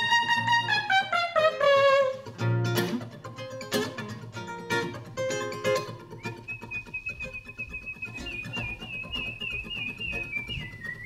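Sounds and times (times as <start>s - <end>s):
soft rhythmic guitar: 0.0s - 11.0s
person whistling a melody: 6.0s - 11.0s.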